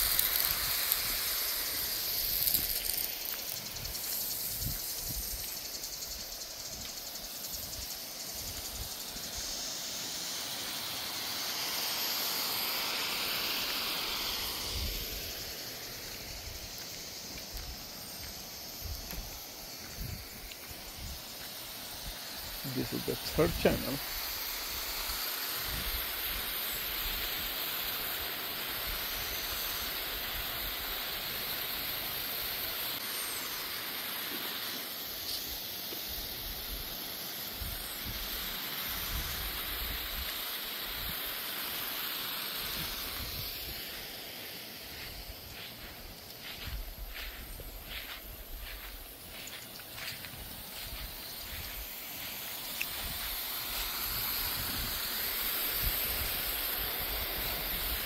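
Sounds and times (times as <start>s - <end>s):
sprinkler spraying water: 0.0s - 58.0s.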